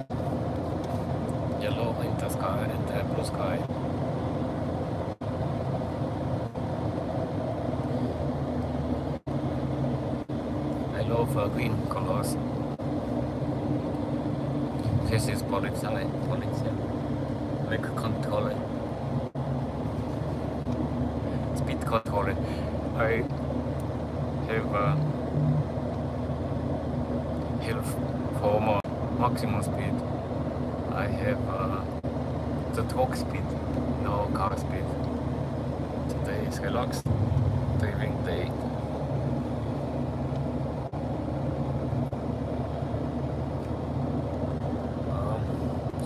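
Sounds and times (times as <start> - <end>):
car engine and road noise: 0.0 - 46.0.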